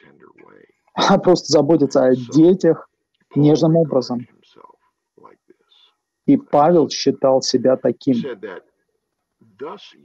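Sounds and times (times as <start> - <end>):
man speaking: 0.0 - 2.8, 3.4 - 4.7, 5.3 - 8.6, 9.5 - 10.0
soft murmurs and breaths: 0.0 - 8.8, 9.4 - 10.0.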